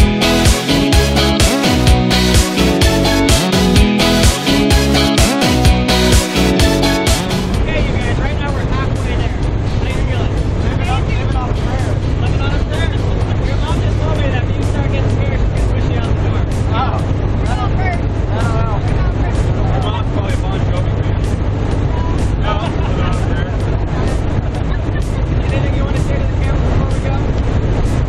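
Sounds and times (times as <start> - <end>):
people talking and laughing: 3.8 - 27.6.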